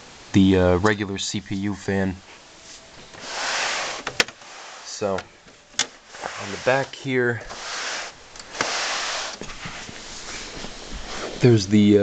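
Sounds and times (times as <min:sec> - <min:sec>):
rustling swish: 0:02.3 - 0:05.2, 0:06.0 - 0:11.7.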